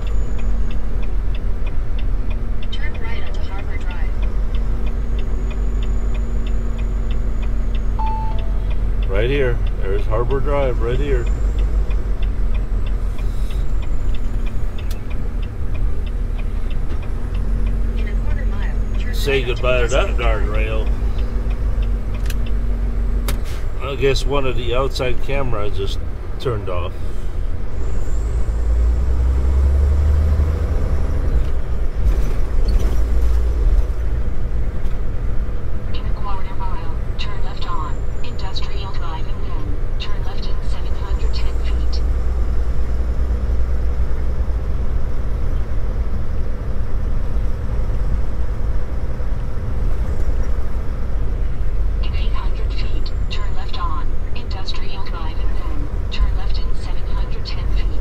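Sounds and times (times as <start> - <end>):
truck engine rumbling: 0.0 - 58.0.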